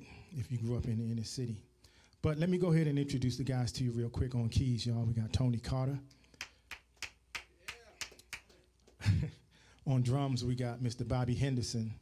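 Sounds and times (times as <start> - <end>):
hand clapping: 6.4 - 9.0.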